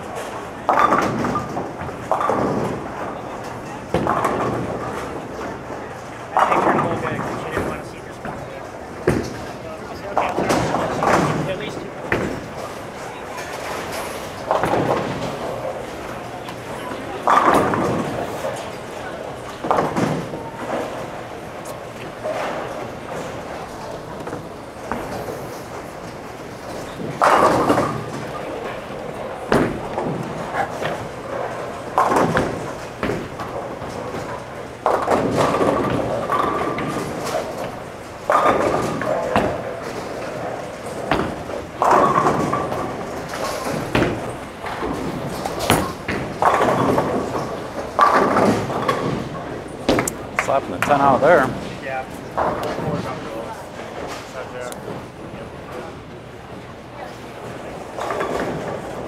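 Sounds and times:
bowling balls and pins crashing: 0.0s - 59.0s.

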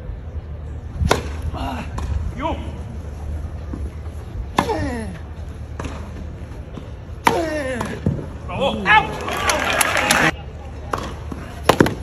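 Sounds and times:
racket hitting tennis ball: 1.0s - 1.4s.

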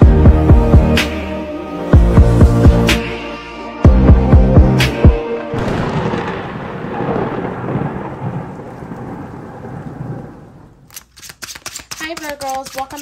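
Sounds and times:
rumbling rain-like wash: 5.6s - 10.9s
cards being shuffled: 10.9s - 13.0s.

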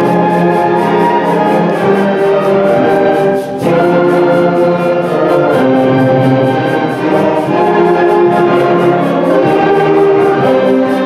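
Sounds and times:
concert band playing wind chords: 0.0s - 11.0s.

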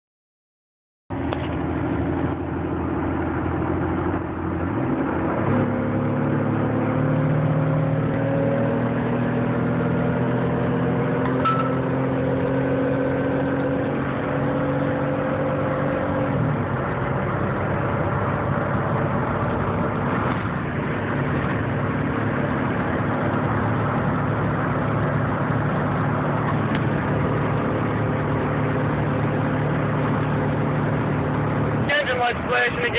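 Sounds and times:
car engine accelerating: 1.1s - 32.9s.

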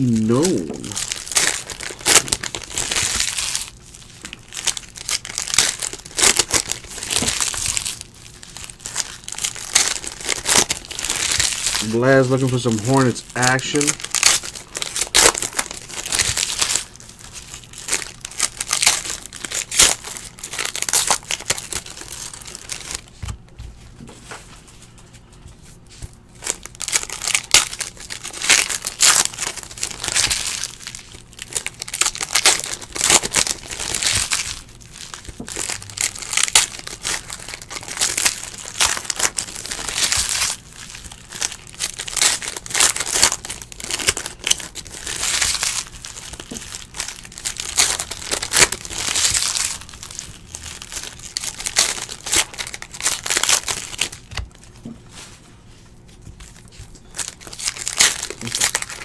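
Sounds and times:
foil wrappers crinkling and tearing: 0.0s - 59.0s.

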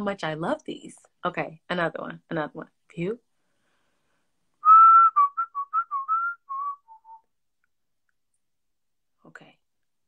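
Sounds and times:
woman whistling a tune: 4.6s - 7.3s.

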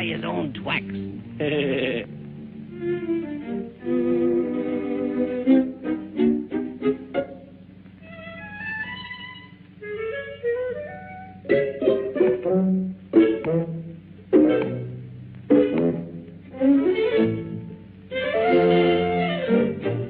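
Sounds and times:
orchestral cartoon music: 0.0s - 20.0s
sharp accented orchestral chords: 0.0s - 20.0s.

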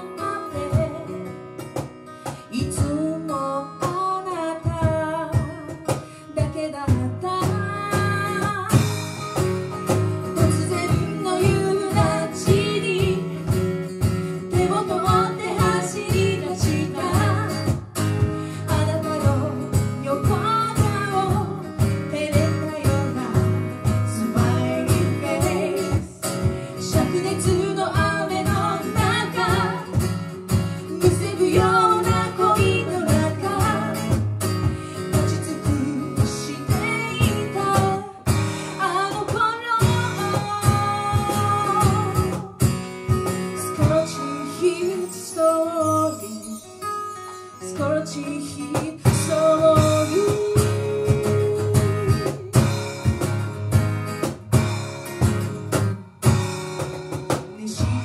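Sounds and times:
acoustic guitars strumming: 0.0s - 58.0s.

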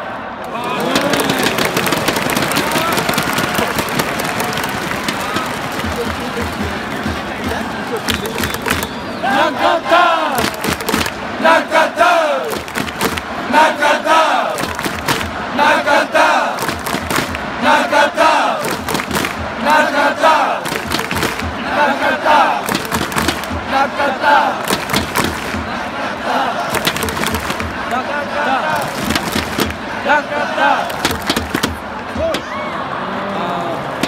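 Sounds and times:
crowd chanting in unison: 0.0s - 3.3s, 5.4s - 34.0s
sharp regular beats: 18.6s - 27.9s.

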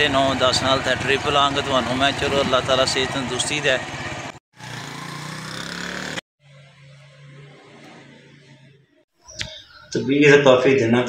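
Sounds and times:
small motorcycle engine running: 0.0s - 8.7s.

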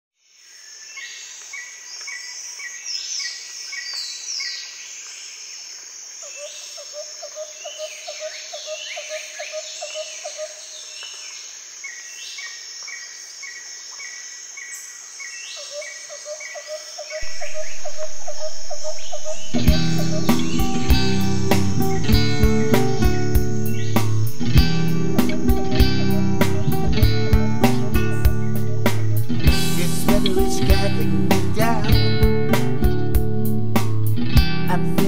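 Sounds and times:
insects buzzing: 4.6s - 34.1s
birds singing: 6.2s - 32.2s
rapid pulsed trill: 17.2s - 31.2s
loud music: 17.2s - 35.0s.

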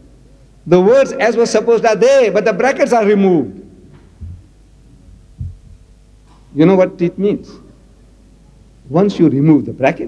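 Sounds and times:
faint steady hum: 0.0s - 10.0s
dull low thumps: 4.1s - 6.0s.

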